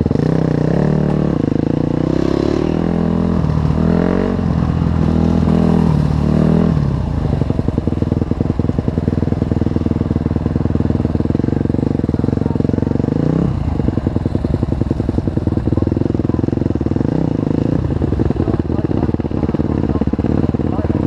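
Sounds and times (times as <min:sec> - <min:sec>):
dirt bike engine revving: 0:00.0 - 0:21.0.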